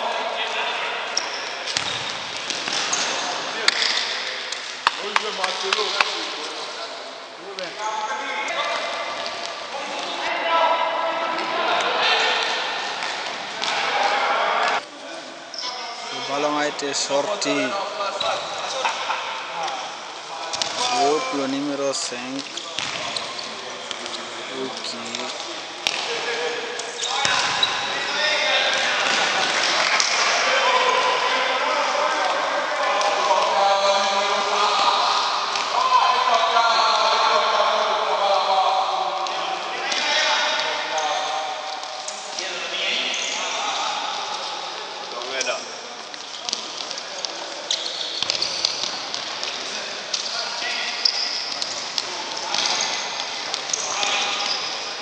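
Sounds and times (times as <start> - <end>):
players shouting: 17.4 - 22.0, 22.8 - 41.8
ball kicked and bouncing: 22.8 - 23.1.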